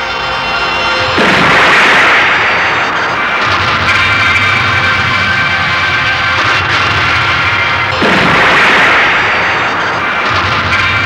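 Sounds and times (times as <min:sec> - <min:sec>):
explosion blast: 0:01.1 - 0:11.0.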